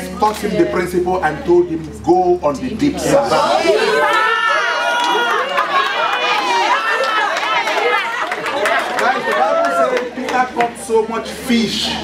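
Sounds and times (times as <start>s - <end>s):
many voices chattering: 0.0s - 12.0s
people laughing: 3.4s - 10.5s.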